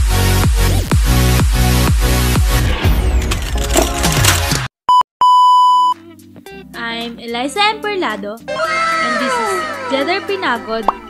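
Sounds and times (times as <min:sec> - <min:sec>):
electronic beep: 0:04.9 - 0:06.0.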